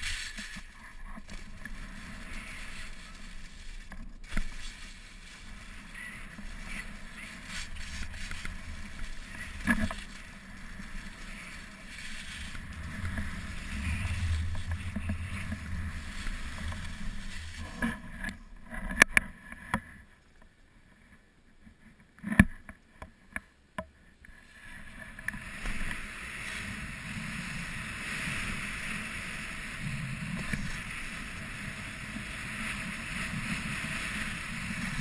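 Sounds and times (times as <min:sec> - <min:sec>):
skis scraping on packed snow: 0:00.0 - 0:19.7, 0:24.4 - 0:35.0.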